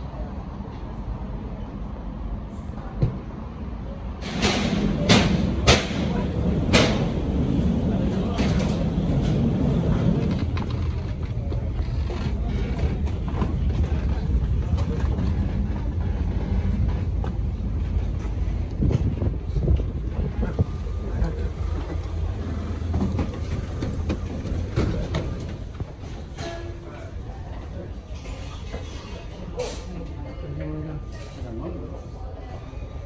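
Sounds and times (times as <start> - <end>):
faint chatter: 0.0 - 33.0
steady low rumble: 4.9 - 26.0.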